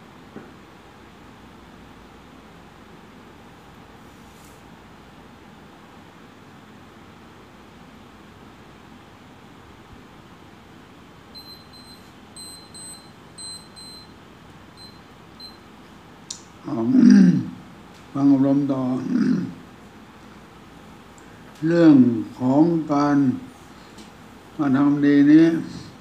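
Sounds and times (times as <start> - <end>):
faint room hiss: 0.0 - 26.0
short high electronic beeps: 11.4 - 14.1
man's voice: 16.6 - 17.6, 18.2 - 19.6, 21.6 - 23.5, 24.6 - 26.0.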